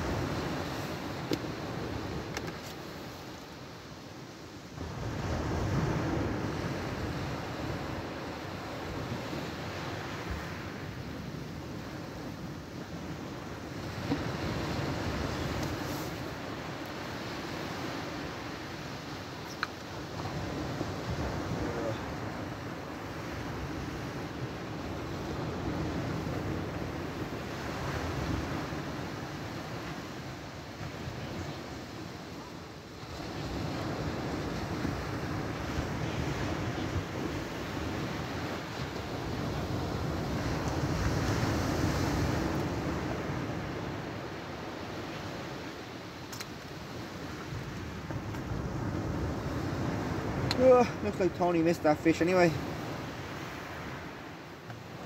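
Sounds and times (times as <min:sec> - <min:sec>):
sea surf breaking: 0:00.0 - 0:55.0
wind rumbling on microphone: 0:00.0 - 0:55.0.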